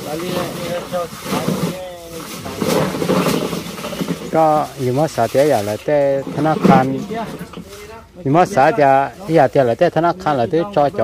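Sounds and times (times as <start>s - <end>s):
people talking: 0.0s - 11.0s
man speaking loudly: 4.4s - 11.0s.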